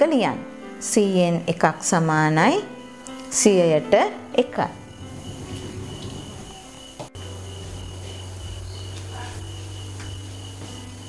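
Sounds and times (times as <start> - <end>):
low hum: 4.6 - 9.1.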